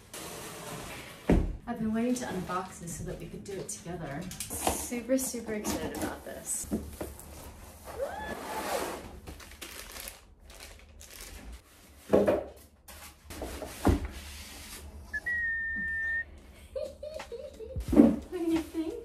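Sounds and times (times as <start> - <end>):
cardboard and plastic rustling: 8.9 - 14.1
high whistle-like tone: 15.1 - 16.3.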